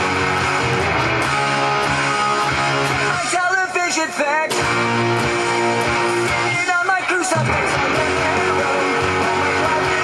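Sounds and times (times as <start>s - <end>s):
electric guitar strumming chords: 0.0s - 10.0s
person singing: 5.4s - 10.0s.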